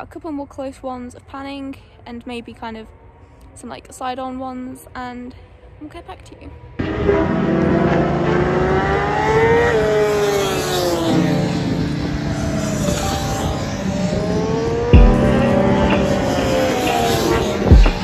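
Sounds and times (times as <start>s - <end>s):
racing engines passing: 6.7s - 18.0s.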